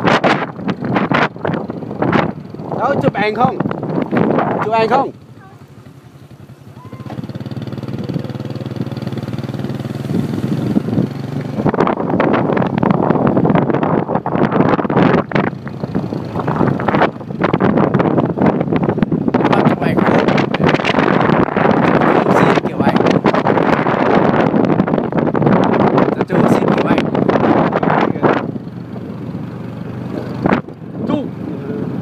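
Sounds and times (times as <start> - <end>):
loud uneven rushing noise: 0.0 - 24.8
small motorcycle engine humming: 0.0 - 32.0.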